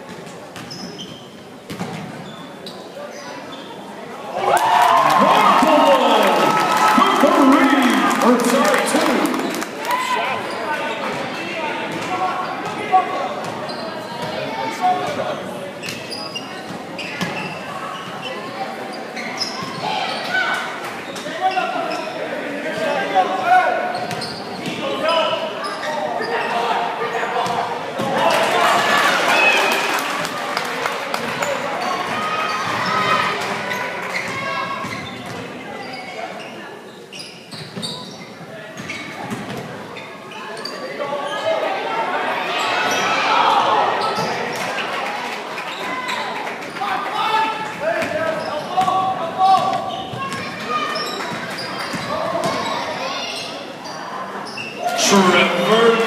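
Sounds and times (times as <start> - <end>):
spectators chatter and calls: 0.0 - 56.0.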